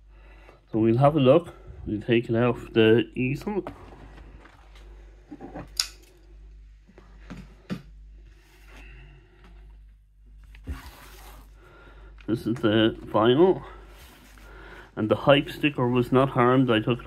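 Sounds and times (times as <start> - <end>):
low steady hum: 0.0 - 17.0
cardboard sleeve handling: 10.5 - 11.6.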